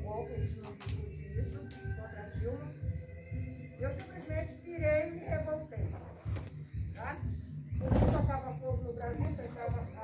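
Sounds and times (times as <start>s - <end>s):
people talking: 0.0s - 2.8s, 7.0s - 10.0s.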